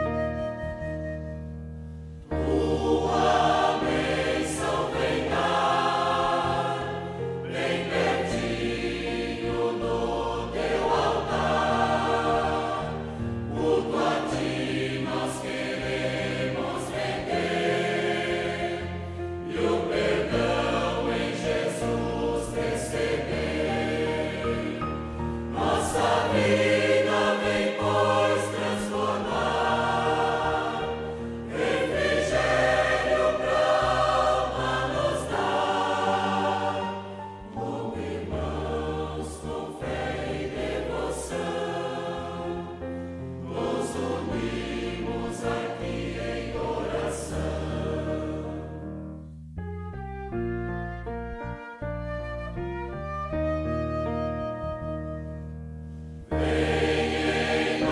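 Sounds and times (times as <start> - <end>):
choir singing a hymn: 0.0 - 1.0, 2.2 - 49.0, 56.2 - 57.9.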